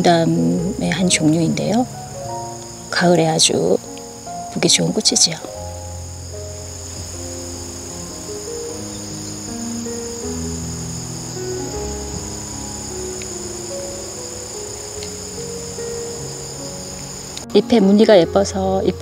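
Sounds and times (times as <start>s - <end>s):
crickets trilling: 0.0s - 19.0s
soft background music: 0.0s - 19.0s.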